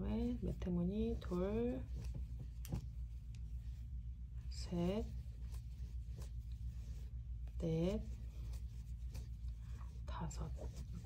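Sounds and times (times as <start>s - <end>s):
crochet hook scratching cord: 0.0s - 3.7s, 4.5s - 11.0s
steady low hum: 0.0s - 11.0s.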